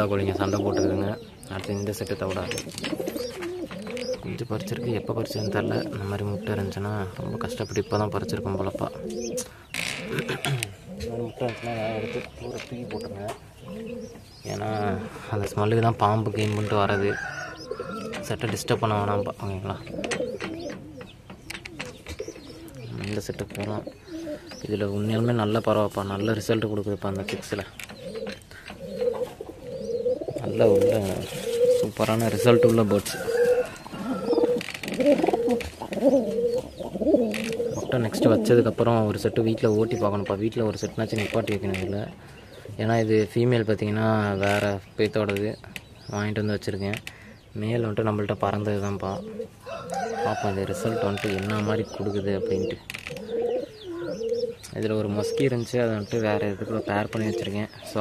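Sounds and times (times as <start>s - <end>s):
pigeons cooing: 0.0s - 58.0s.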